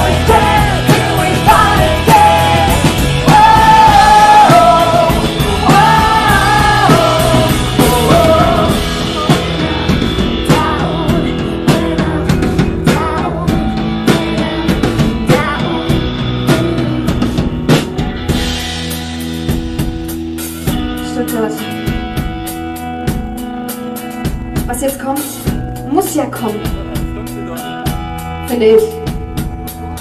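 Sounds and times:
bass guitar: 0.0 - 30.0
drum kit beat: 0.0 - 30.0
electric guitar: 0.0 - 30.0.

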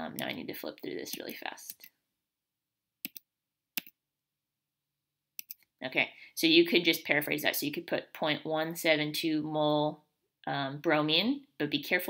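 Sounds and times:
computer mouse clicks: 1.1 - 1.9, 3.0 - 4.0, 5.4 - 5.7.

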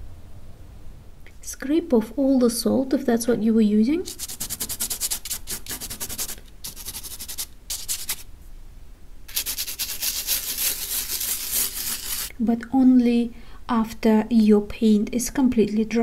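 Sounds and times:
hand scratching paper: 4.0 - 8.3, 9.3 - 12.3.

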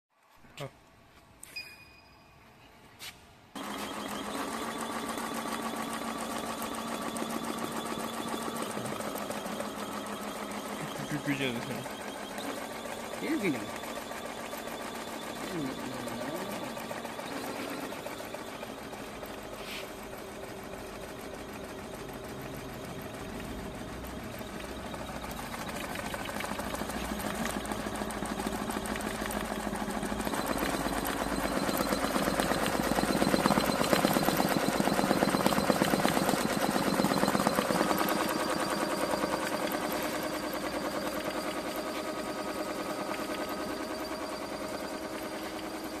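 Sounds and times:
embroidery machine needle clatter: 3.6 - 46.0.

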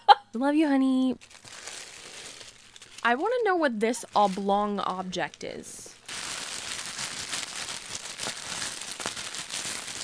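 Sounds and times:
gift wrap crinkling: 1.2 - 10.0.

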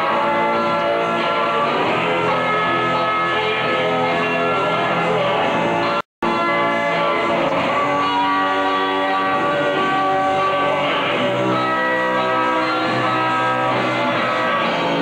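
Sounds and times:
drums: 0.0 - 15.0
electric guitars: 0.0 - 15.0
live rock band playing: 0.0 - 15.0.

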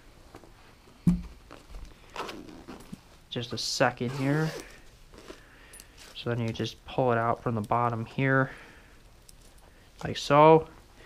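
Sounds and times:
dull thump: 1.0 - 1.3.

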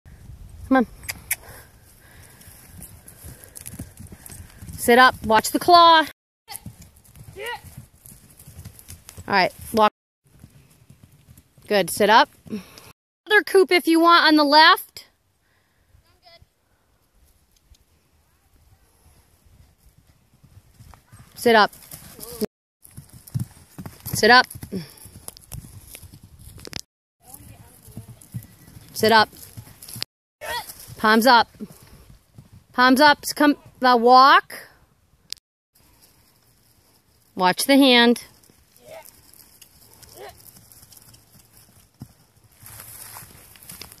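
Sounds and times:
horse hoofbeats on grass: 2.1 - 5.8, 6.5 - 12.8, 19.4 - 33.7, 38.2 - 44.0.

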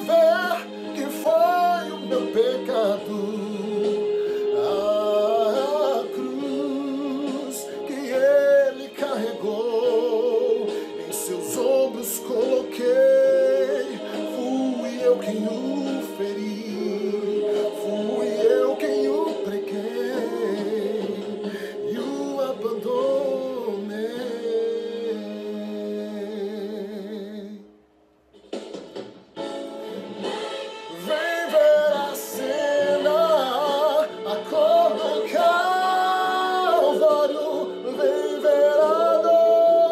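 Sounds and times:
man singing gospel ballad: 0.0 - 27.7, 30.9 - 39.9
backing track music: 0.0 - 39.9.

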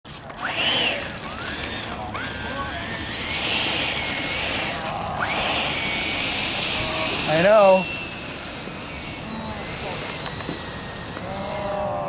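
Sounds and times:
electric ducted fans whining: 0.1 - 12.0.

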